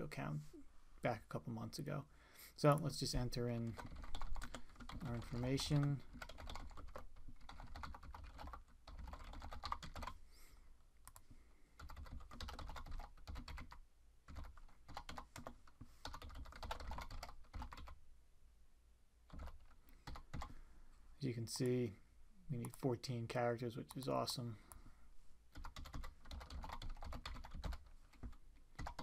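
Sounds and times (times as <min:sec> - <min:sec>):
computer keyboard typing: 0:03.7 - 0:10.2, 0:11.8 - 0:18.0, 0:19.3 - 0:20.6, 0:25.5 - 0:29.0.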